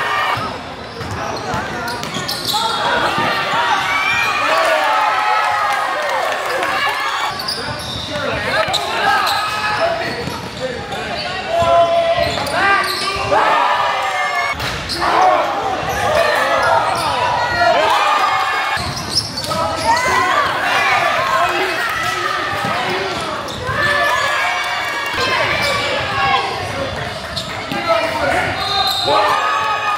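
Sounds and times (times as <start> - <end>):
people shouting: 11.5 - 18.8, 28.8 - 29.9.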